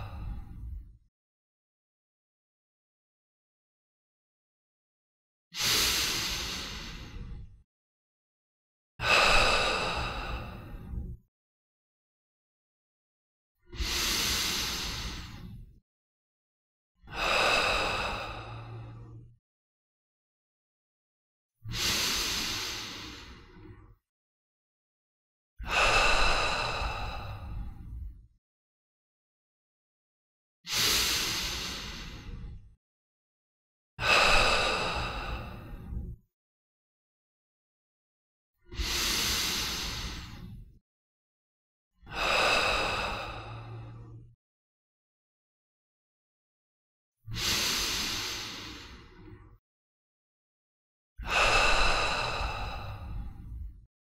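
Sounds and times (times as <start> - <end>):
long breathy exhale: 5.6 - 7.5, 9.0 - 11.2, 13.7 - 15.8, 17.0 - 19.3, 21.7 - 23.8, 25.6 - 28.1, 30.7 - 32.7, 34.0 - 36.1, 38.7 - 40.7, 42.1 - 44.3, 47.3 - 49.6, 51.2 - 53.7.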